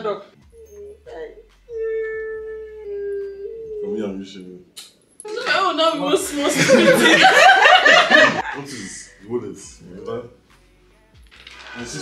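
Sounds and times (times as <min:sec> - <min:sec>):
people talking: 0:05.3 - 0:10.3
woman laughing: 0:06.3 - 0:08.8.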